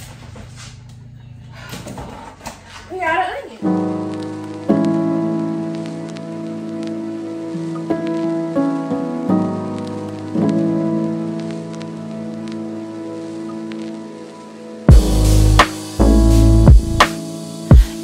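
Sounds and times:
soft keyboard chords music: 3.6 - 18.0.

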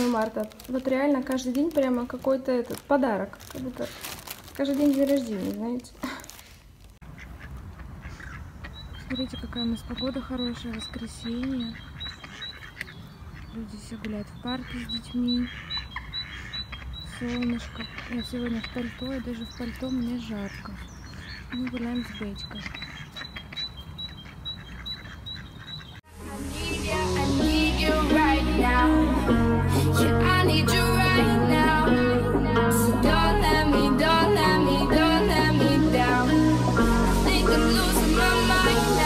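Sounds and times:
outdoor background noise: 0.0 - 28.9
ducks quacking faintly: 7.0 - 26.0
background music: 26.1 - 39.0.

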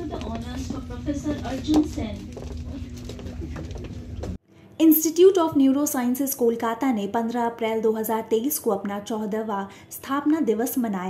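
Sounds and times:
steady low hum: 0.0 - 4.4.

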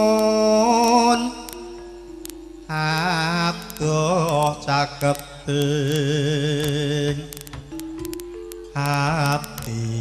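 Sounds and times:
faint steady held tone: 0.0 - 10.0
person singing slow song: 0.0 - 10.0.

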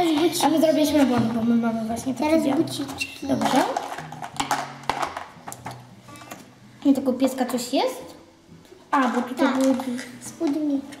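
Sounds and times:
plastic packaging rustling: 3.0 - 6.5, 9.0 - 10.8.

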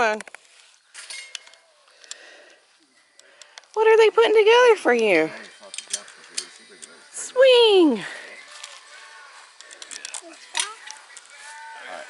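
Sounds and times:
soft voices talking: 1.4 - 12.0.

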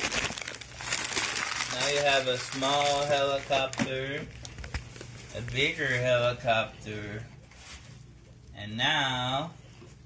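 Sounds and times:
packing material crinkling: 0.0 - 6.3.

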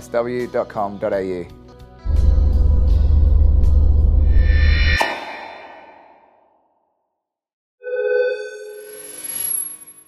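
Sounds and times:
swish: 4.3 - 6.3.

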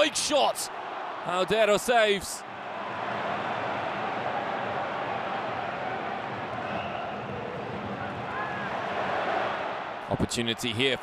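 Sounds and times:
stadium crowd hubbub: 0.0 - 10.8.

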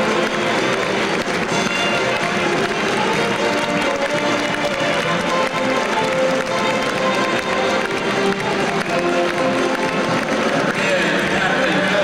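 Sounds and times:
string band playing: 0.0 - 12.0.

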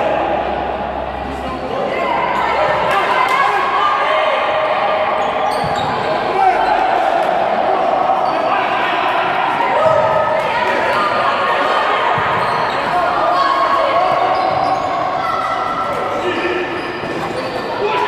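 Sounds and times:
people calling and shouting: 0.0 - 18.0.

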